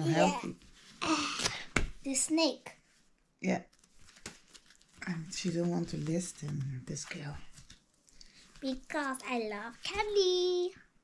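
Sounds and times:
cardboard cards rustling: 0:03.7 - 0:10.5.

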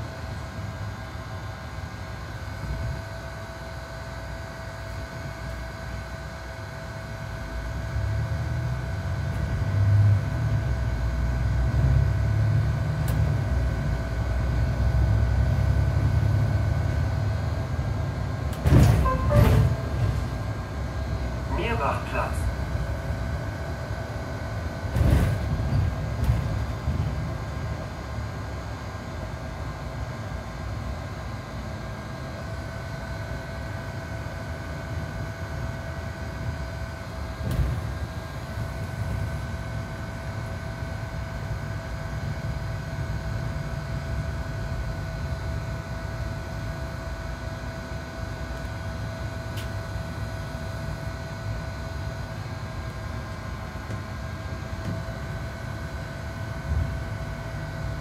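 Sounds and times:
bus drivetrain and road rumble: 0:00.0 - 0:58.0
bus body knocking over bumps: 0:18.5 - 0:20.8, 0:24.6 - 0:28.0, 0:37.2 - 0:40.3
faint high hum: 0:18.7 - 0:24.0.

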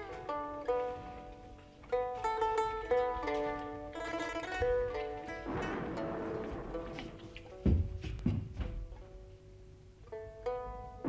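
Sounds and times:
plucked string melody: 0:00.0 - 0:11.0
loud low drum strokes: 0:05.3 - 0:08.5.

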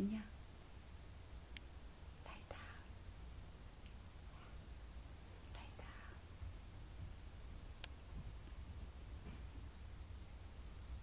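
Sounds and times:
low room hum: 0:00.0 - 0:11.0
person whispering: 0:02.2 - 0:02.9, 0:05.5 - 0:06.2.

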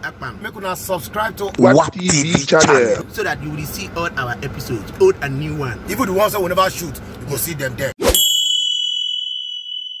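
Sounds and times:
bright bell ding: 0:08.1 - 0:10.0.

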